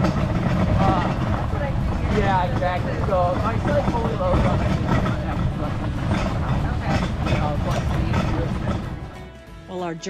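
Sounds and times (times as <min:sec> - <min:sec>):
cart rolling on dirt trail: 0:00.0 - 0:09.2
faint voices: 0:00.0 - 0:09.2.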